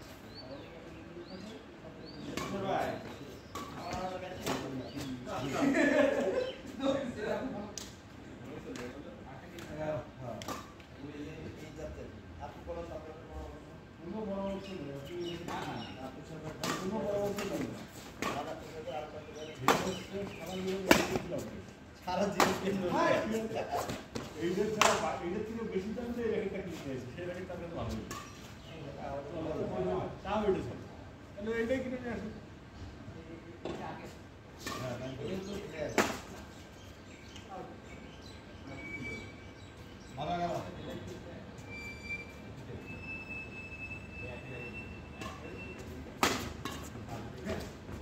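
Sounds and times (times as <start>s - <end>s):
players' voices: 0.1s - 48.0s
rackets hitting shuttlecock: 16.6s - 18.5s, 19.6s - 20.2s, 20.8s - 21.4s, 22.2s - 22.8s, 35.9s - 36.4s, 46.2s - 47.0s
racket striking shuttlecock: 46.2s - 47.0s.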